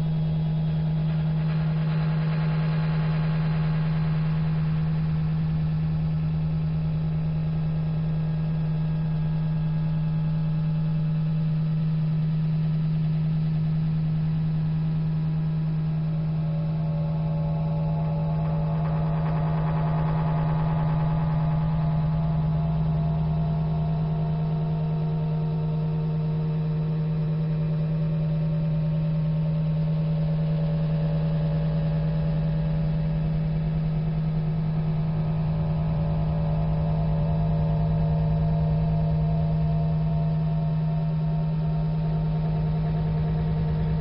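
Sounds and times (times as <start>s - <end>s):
steady low drone tone: 0.0s - 44.0s.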